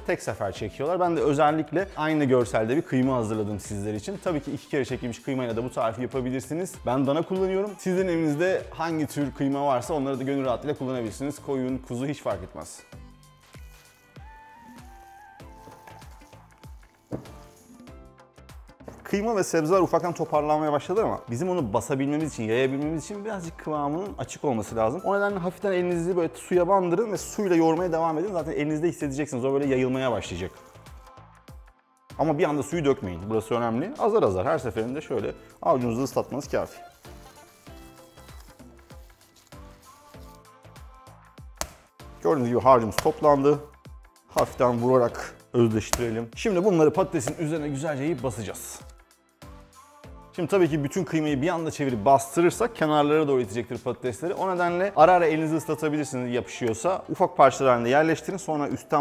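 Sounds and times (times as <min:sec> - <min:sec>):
background music: 0:00.0 - 0:59.0
light melody over soft beat: 0:00.0 - 0:59.0.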